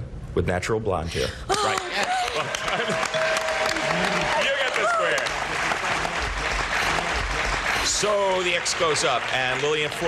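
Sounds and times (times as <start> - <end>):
studio audience applauding: 1.5 - 10.0.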